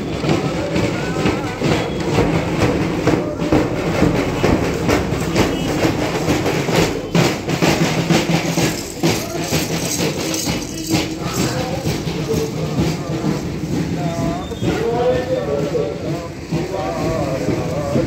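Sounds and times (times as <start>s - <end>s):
marching drum band: 0.0s - 18.0s.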